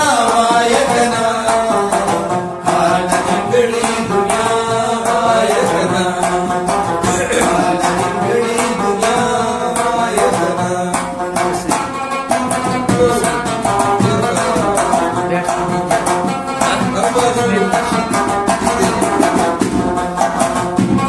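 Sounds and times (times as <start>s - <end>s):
clay pot percussion: 0.0s - 21.0s
plucked rabab strings: 0.0s - 21.0s.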